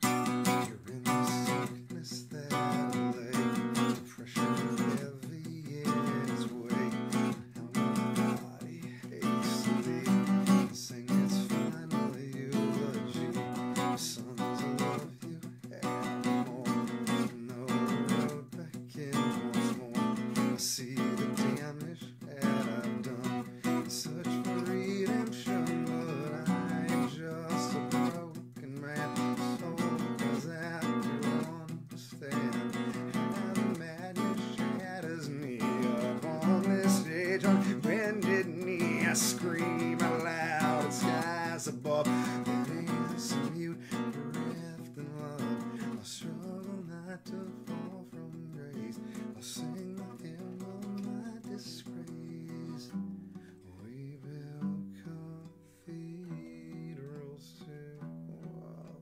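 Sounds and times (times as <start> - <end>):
acoustic guitars strumming chords: 0.0 - 59.0.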